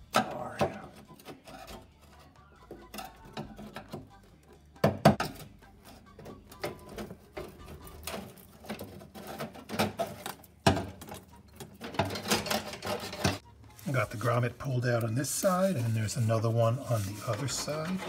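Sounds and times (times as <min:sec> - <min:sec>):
pry tool scraping metal: 0:00.1 - 0:04.2, 0:07.4 - 0:13.4.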